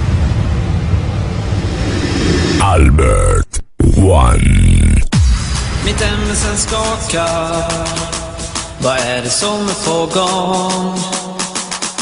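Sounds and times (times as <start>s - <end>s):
electronically processed voice: 2.6s - 5.2s
heavy bass bed: 2.6s - 5.7s.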